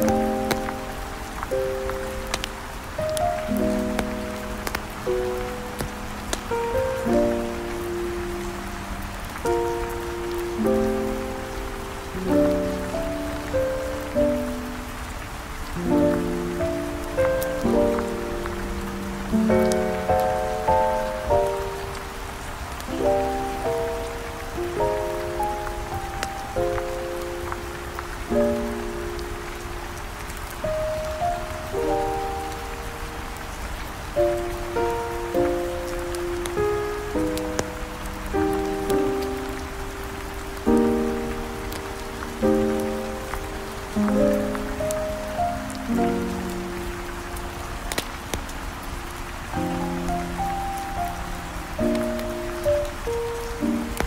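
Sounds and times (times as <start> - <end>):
steady rain falling: 0.0 - 54.0.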